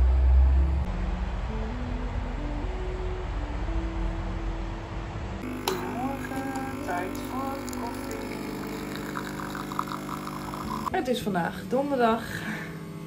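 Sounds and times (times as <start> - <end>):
background music: 0.0 - 10.2.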